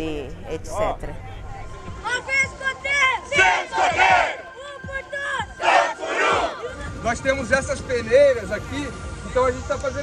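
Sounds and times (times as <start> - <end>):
group shouting a cheer: 3.3 - 4.4, 5.6 - 6.6.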